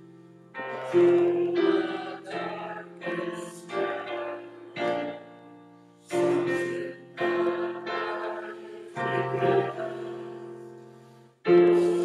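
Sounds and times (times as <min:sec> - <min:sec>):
piano chords: 0:00.0 - 0:12.0
voices singing a hymn: 0:00.6 - 0:05.4, 0:06.0 - 0:12.0.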